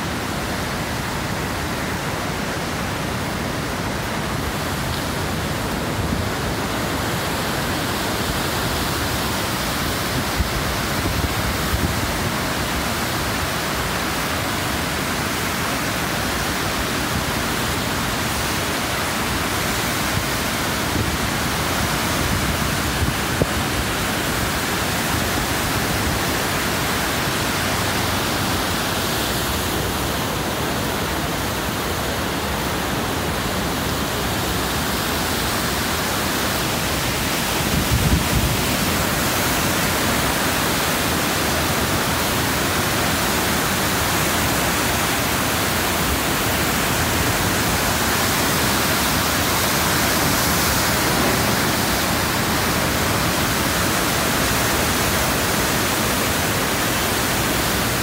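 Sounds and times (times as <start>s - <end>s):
rushing whitewater rapids: 0.0s - 58.0s.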